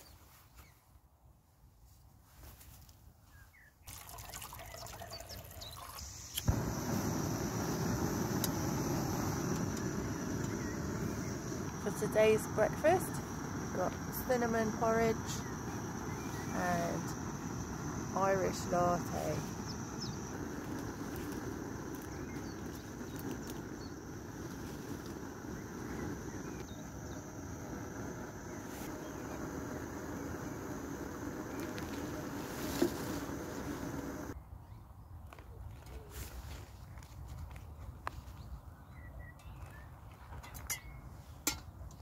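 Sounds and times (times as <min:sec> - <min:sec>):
gas stove burner hissing: 0:05.9 - 0:34.4.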